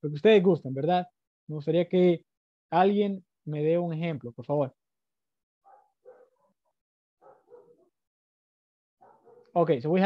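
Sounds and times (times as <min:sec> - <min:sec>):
dog barking faintly: 0:05.6 - 0:08.0, 0:09.0 - 0:09.6.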